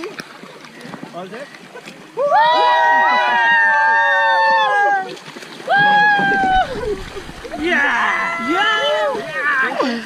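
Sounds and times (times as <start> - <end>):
water splashing: 0.0 - 10.0.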